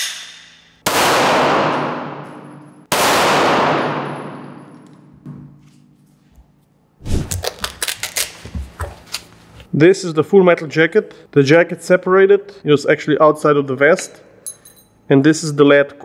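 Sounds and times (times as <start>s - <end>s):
gunshots echoing in a hall: 0.0s - 5.1s.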